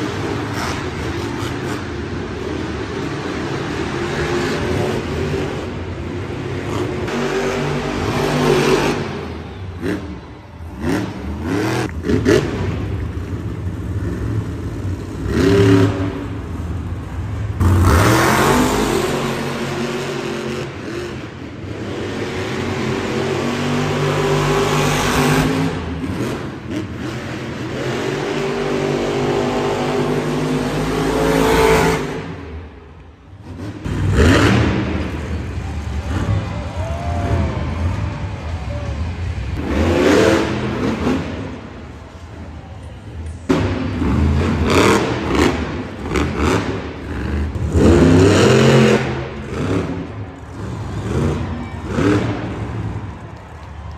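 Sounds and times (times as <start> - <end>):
monster truck engines revving: 0.0 - 53.9.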